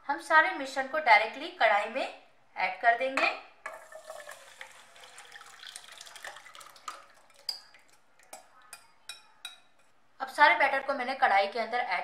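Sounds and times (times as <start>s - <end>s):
batter pouring into hot oil: 3.7s - 8.5s.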